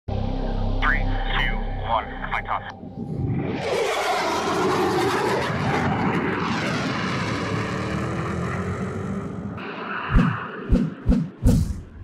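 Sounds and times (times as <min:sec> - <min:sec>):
jet engine roar with whine: 0:02.7 - 0:12.0.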